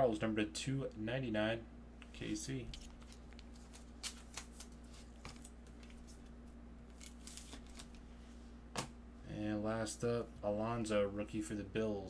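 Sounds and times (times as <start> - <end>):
trading cards clicking and rustling: 2.0 - 6.3, 6.9 - 8.0.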